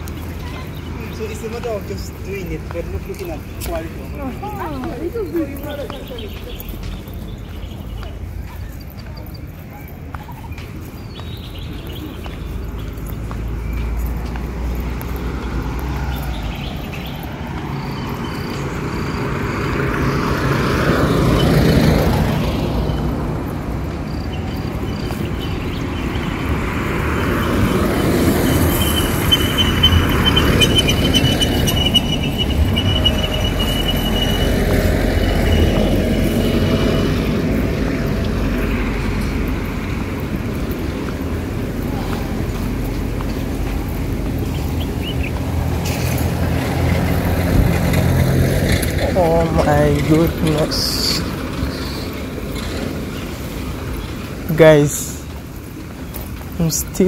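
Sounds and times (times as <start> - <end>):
cars passing on paved road: 0.0 - 57.0.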